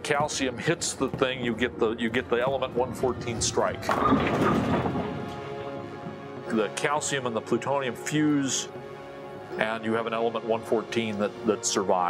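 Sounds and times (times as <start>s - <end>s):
soft background music: 0.0s - 12.0s
bowling ball crashing into pins: 3.8s - 5.4s.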